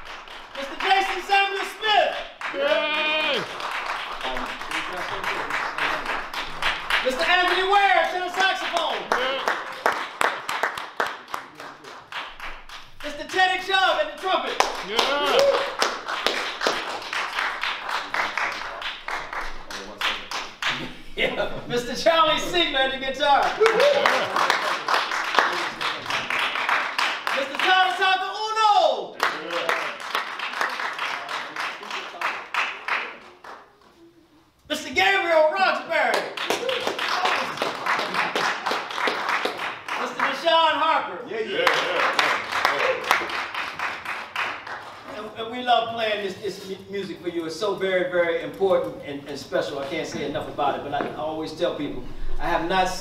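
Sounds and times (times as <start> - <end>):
sharp hand claps: 0.0 - 20.9, 23.3 - 28.2, 29.2 - 33.9, 36.1 - 40.5, 41.6 - 45.1
person calling out: 1.3 - 3.5, 14.8 - 15.7.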